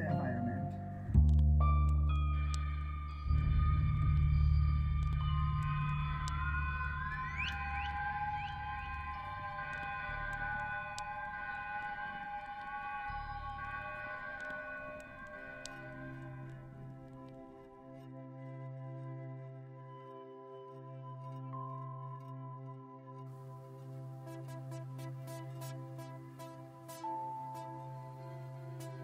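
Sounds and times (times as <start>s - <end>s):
deep low drone: 0.0s - 17.1s
long held high tones: 2.2s - 17.0s.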